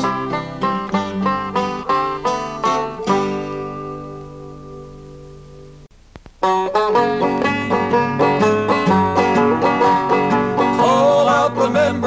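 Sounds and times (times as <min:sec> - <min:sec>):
banjo and acoustic guitar playing: 0:00.0 - 0:05.8, 0:06.4 - 0:12.0
faint clicks: 0:06.1 - 0:06.4.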